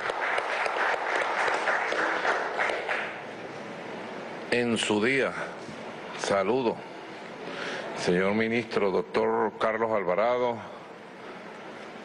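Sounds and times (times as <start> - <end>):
audience applauding: 0.0 - 3.2.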